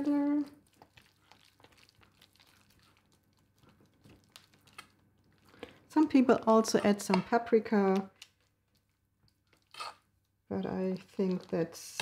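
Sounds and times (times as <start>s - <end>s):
spatula stirring thick filling: 0.0s - 12.0s.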